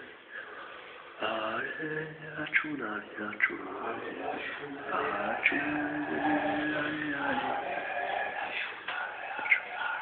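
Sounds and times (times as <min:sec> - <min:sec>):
faint voices: 0:00.0 - 0:10.0
man singing long note: 0:01.2 - 0:10.0.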